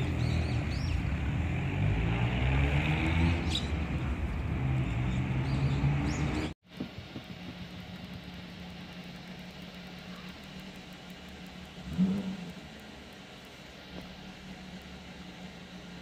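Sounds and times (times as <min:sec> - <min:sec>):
low mechanical hum: 0:06.7 - 0:16.0.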